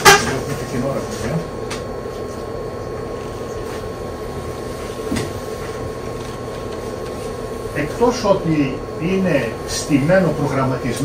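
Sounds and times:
faint high whine: 0.0s - 11.0s
room hum and hiss: 0.0s - 11.0s.

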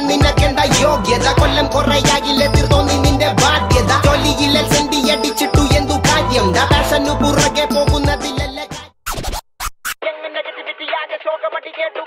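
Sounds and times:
song playing: 0.0s - 8.9s
dj scratch effects: 5.6s - 10.0s.

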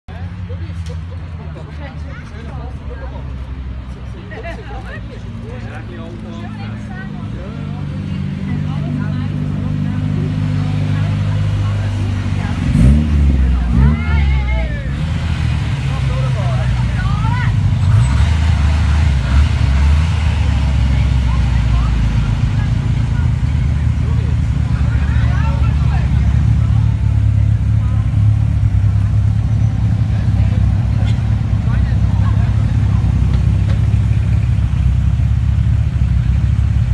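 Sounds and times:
cars driving past slowly: 0.1s - 36.9s
engine throttle blips: 5.4s - 36.9s.

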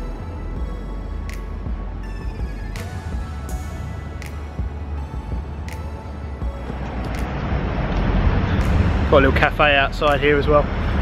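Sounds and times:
background music: 0.0s - 11.0s
road traffic rumble: 0.6s - 11.0s.

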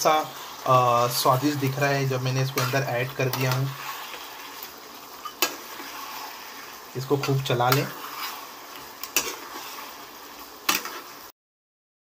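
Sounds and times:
spatula stirring gravy in pan: 0.2s - 11.3s.

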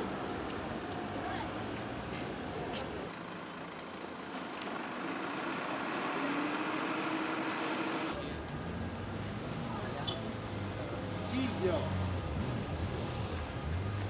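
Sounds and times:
heavy vehicle engine pulling away: 0.0s - 14.0s
street traffic noise: 0.0s - 14.0s.

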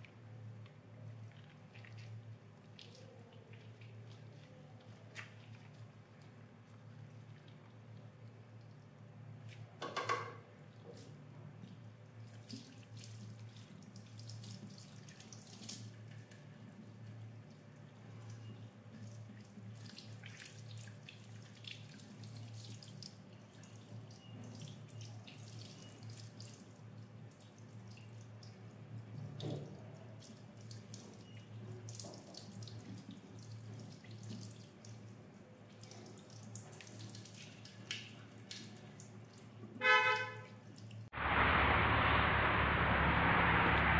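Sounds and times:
water drips and splashes: 0.0s - 9.8s, 10.6s - 41.1s
steady low hum: 41.2s - 43.9s.

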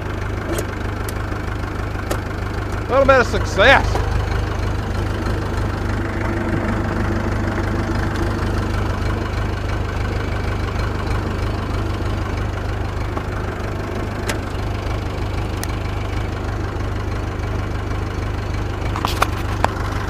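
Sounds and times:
tractor diesel engine running: 0.0s - 20.0s.

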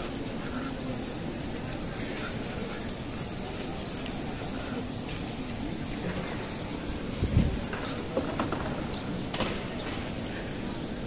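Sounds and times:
crowd walking: 0.0s - 11.0s
faint indistinct voices: 0.0s - 11.0s.

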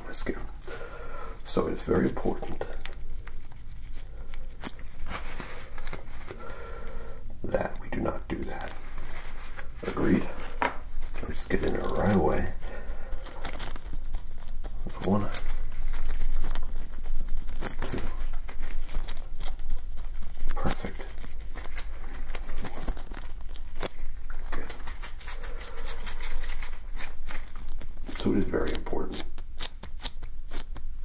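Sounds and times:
disposable glove crinkling: 0.0s - 31.0s.

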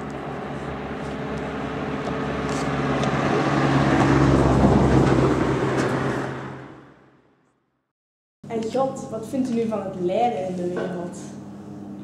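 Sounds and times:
vehicle engine humming: 0.0s - 7.4s.

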